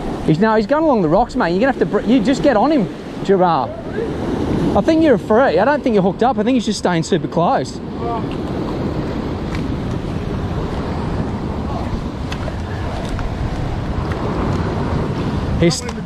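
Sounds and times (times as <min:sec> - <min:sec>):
ocean surf over rocks: 0:00.0 - 0:16.0
wind buffeting microphone: 0:00.0 - 0:16.0.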